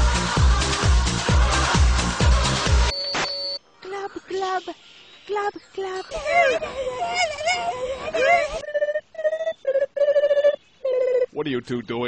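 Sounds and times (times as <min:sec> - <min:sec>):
high wavering cartoon voices: 0:03.9 - 0:11.6
trilled vocal ringing calls: 0:04.4 - 0:12.0.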